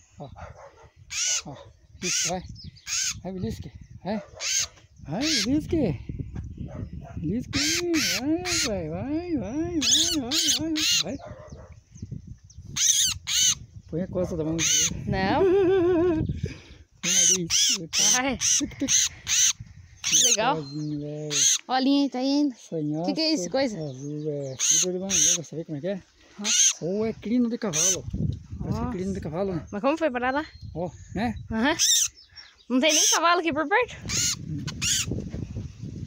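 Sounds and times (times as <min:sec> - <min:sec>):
bird distress squawks: 0:00.6 - 0:03.3, 0:04.2 - 0:05.7, 0:07.5 - 0:08.9, 0:09.8 - 0:11.8, 0:12.7 - 0:13.7, 0:14.4 - 0:15.1, 0:17.0 - 0:22.1, 0:24.4 - 0:25.6, 0:26.3 - 0:26.9, 0:27.6 - 0:28.0, 0:31.6 - 0:33.4, 0:34.0 - 0:35.2.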